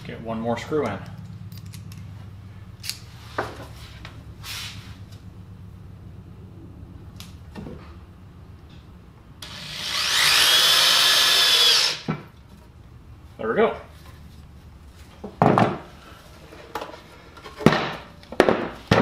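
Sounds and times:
drill motor whining: 9.4s - 12.1s.

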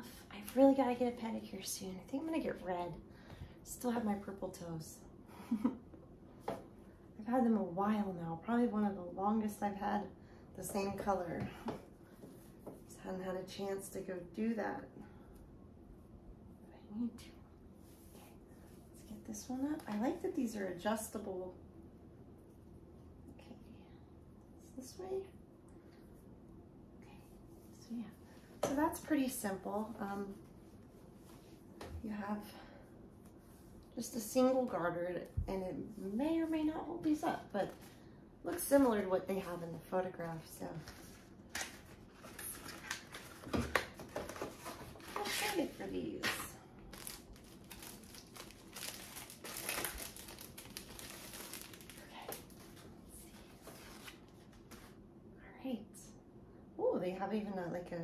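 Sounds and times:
paper packaging crinkling: 41.6s - 52.8s.

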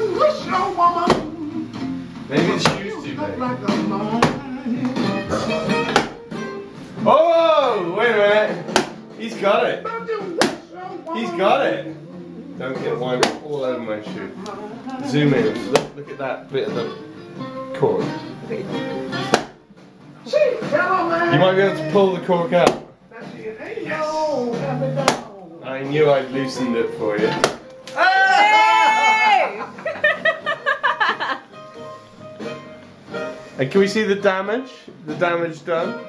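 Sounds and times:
guitar music: 0.0s - 36.0s
boot thudding against wall: 1.1s - 1.4s, 4.2s - 4.5s, 5.8s - 6.4s, 8.7s - 9.0s, 19.3s - 19.6s, 22.6s - 23.0s, 27.4s - 27.7s
bottle in shoe thudding on wall: 19.3s - 19.6s.

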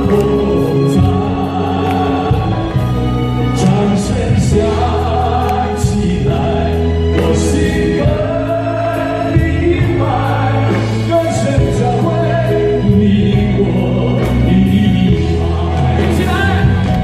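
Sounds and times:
live band playing pop song: 0.0s - 17.0s
man singing: 0.0s - 17.0s.

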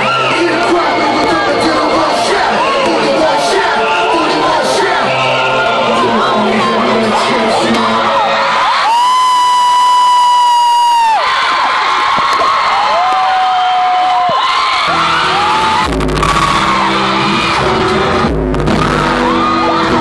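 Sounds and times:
song intro music: 0.0s - 8.8s, 14.9s - 20.0s
crowd screaming and cheering: 0.0s - 20.0s
deep bass hit: 15.4s - 20.0s.

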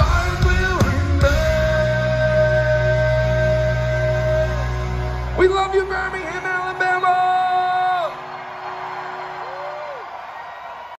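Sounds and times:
person singing through pa: 0.0s - 4.8s
crowd cheering and whooping: 7.2s - 10.9s.

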